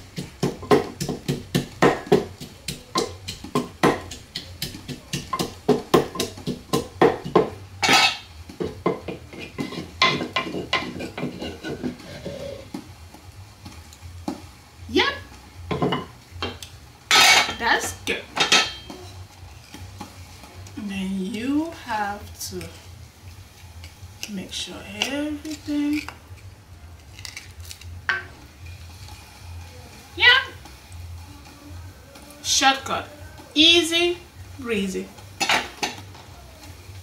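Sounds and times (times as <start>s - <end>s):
wooden pestle pounding in mortar: 0.0s - 7.6s.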